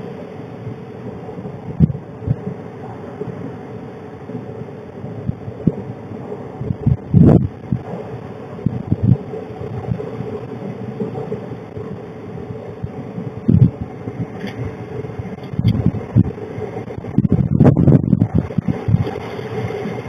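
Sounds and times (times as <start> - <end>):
steady low hum: 0.0 - 20.0
wind buffeting microphone: 0.0 - 20.0.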